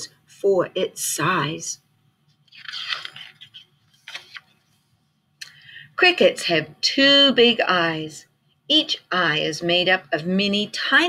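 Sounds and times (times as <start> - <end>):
book pages rustling: 2.3 - 5.0.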